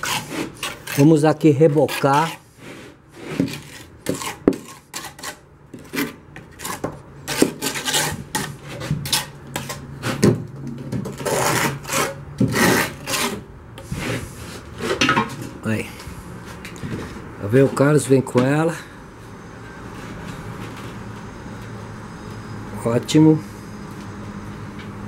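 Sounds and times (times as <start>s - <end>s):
mortar scraping on bricks: 0.0s - 15.7s.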